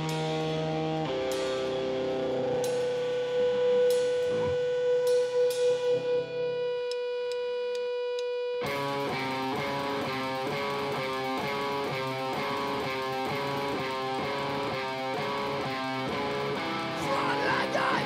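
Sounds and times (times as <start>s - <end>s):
electric guitar riff: 0.0s - 18.0s.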